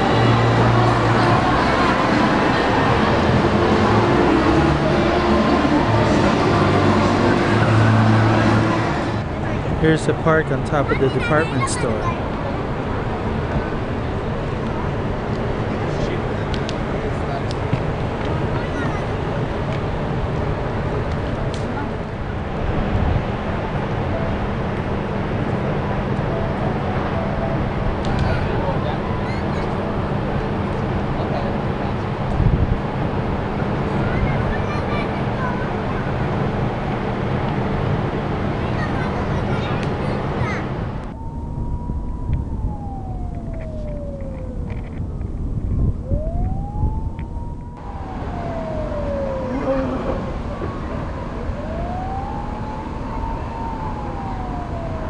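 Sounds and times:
siren wailing: 0.0s - 9.3s, 40.2s - 55.0s
faint voices: 0.0s - 45.1s, 45.8s - 55.0s
distant traffic rumble: 0.0s - 55.0s.

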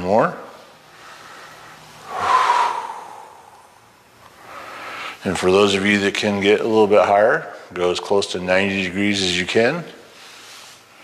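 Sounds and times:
person exhaling through mouth: 2.0s - 3.8s.

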